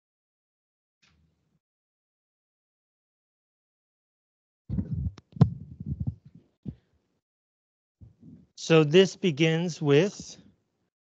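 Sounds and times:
low muffled thumps and rumble: 0:04.7 - 0:06.8.

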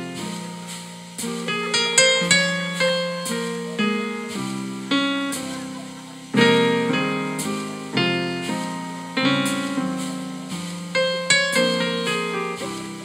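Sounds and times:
digital keyboard piano chords: 0:00.0 - 0:13.0.

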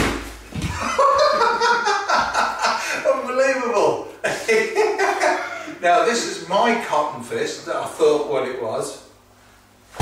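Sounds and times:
men laughing: 0:00.7 - 0:03.1, 0:04.2 - 0:05.8.

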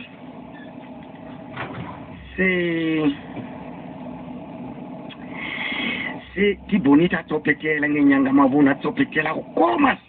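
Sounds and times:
car engine idling: 0:00.0 - 0:09.9.

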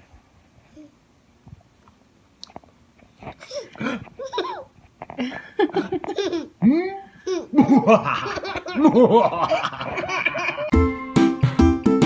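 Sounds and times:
baby laughing: 0:03.3 - 0:04.7, 0:05.7 - 0:06.6, 0:07.2 - 0:10.7
man doing evil laugh: 0:07.5 - 0:10.7.

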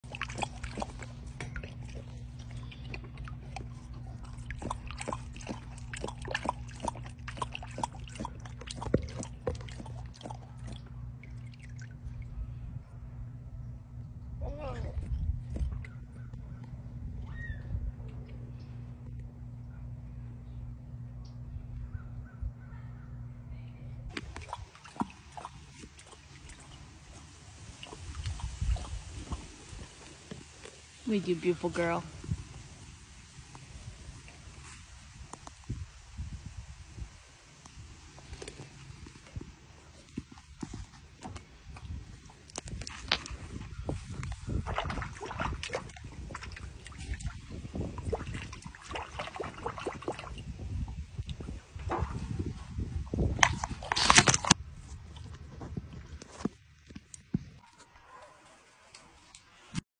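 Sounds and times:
jaguar lapping water: 0:00.0 - 0:12.9, 0:14.9 - 0:17.1, 0:24.1 - 0:57.7
low hum: 0:00.0 - 0:58.0.

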